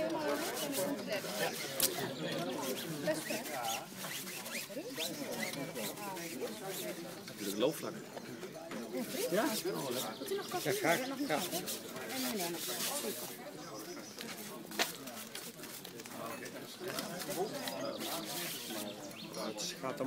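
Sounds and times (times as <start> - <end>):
people talking: 0.0 - 20.0.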